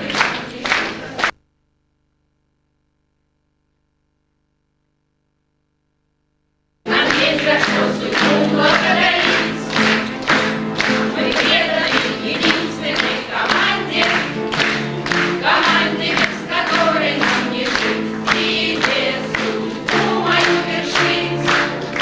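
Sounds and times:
group of people singing: 0.0 - 1.3, 6.9 - 22.0
clapping in time: 0.0 - 1.4, 6.9 - 22.0.

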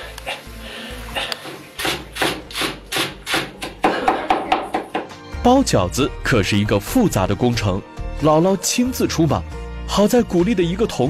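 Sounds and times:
knife chopping on wooden board: 1.8 - 5.1.

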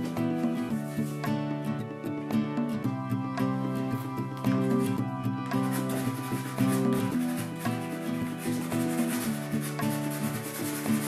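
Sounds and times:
background music sustained notes: 0.0 - 11.0
chalk pastel rubbing on paper: 0.7 - 1.3, 5.4 - 11.0.

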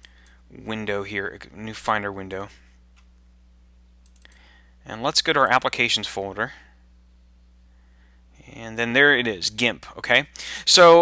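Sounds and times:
low electrical hum: 0.0 - 11.0
computer mouse clicks: 4.0 - 4.4.

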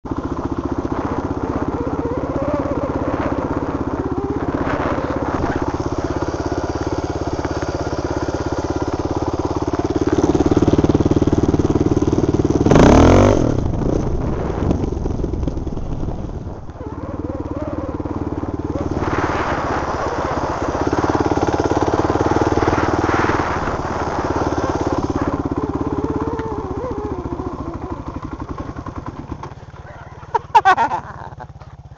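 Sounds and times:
dirt bike engine running: 0.0 - 31.9.

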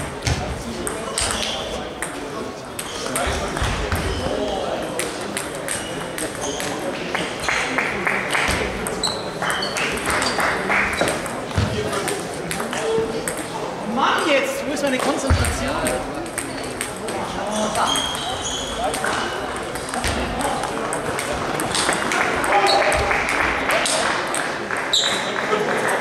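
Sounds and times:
people talking: 0.0 - 26.0
table tennis ball clicking: 5.0 - 6.7, 12.0 - 13.5, 15.4 - 17.1, 18.8 - 22.2.

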